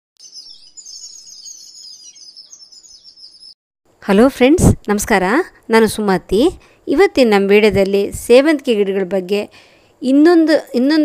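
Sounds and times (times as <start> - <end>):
small birds chirping: 0.2 - 3.6.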